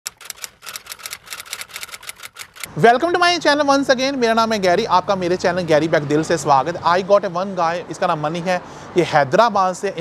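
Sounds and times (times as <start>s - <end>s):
keystroke clicks: 0.1s - 2.7s.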